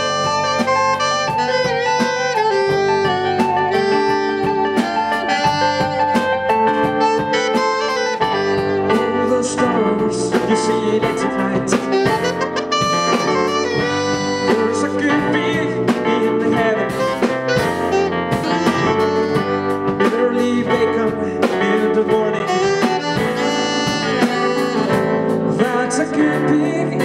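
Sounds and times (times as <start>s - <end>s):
drum kit beat: 0.0s - 27.0s
electric guitar: 0.0s - 27.0s
organ keyboard: 0.0s - 27.0s
saxophone line: 0.0s - 27.0s.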